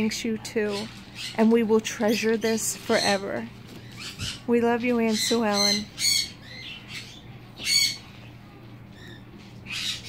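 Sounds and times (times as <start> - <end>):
low steady hum: 0.0 - 10.0
parrot squawks: 5.1 - 8.0, 9.0 - 10.0.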